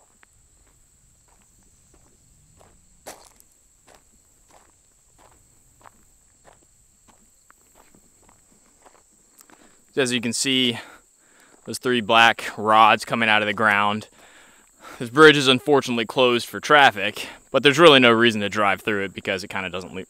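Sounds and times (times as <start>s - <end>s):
footsteps on gravel: 0.0s - 11.9s.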